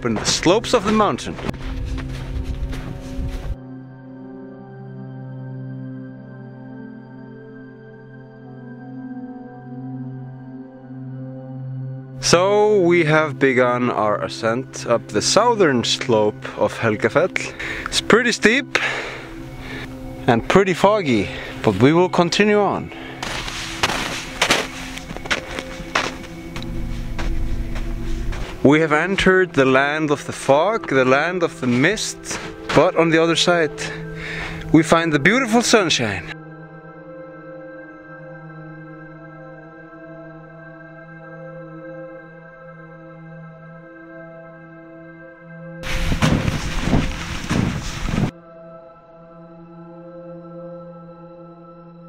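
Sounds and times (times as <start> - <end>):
footsteps crunching in snow: 0.0 - 3.6, 22.9 - 29.0, 29.6 - 33.0, 45.8 - 48.3
soft background music: 0.0 - 52.0
wind on microphone: 1.5 - 3.6, 45.8 - 48.3.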